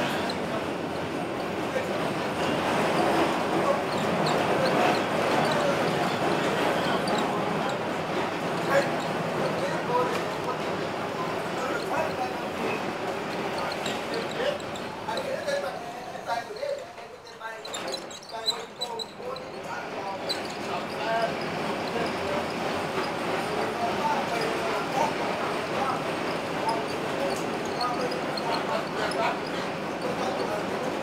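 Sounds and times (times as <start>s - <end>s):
faint short high squeaks: 0.0s - 0.6s, 2.9s - 7.8s, 16.6s - 22.6s
trolley car running noise: 0.0s - 15.1s, 17.7s - 31.0s
indistinct voices talking: 0.0s - 31.0s.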